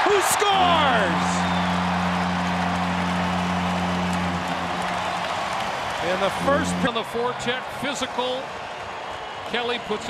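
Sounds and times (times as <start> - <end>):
crowd cheering: 0.0 - 10.0
goal horn low note: 0.5 - 7.4.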